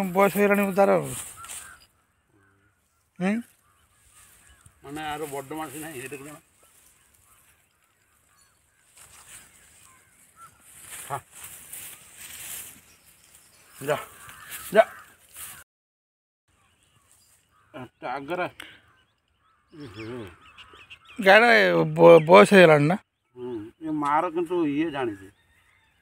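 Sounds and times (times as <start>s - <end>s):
faint short bird calls: 1.1s - 12.8s, 13.6s - 15.6s, 16.5s - 21.2s.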